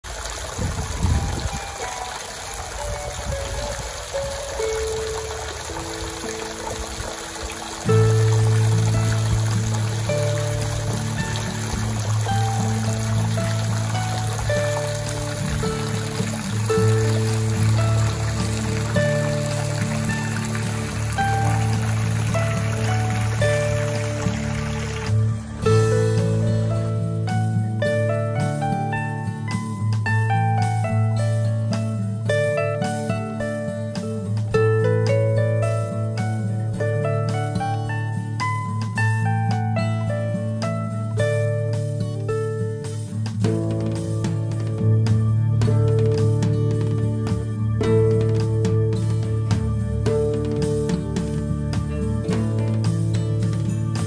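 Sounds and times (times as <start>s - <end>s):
water trickling: 0.0s - 45.0s
harp music: 0.0s - 54.0s
low steady bass: 4.6s - 54.0s.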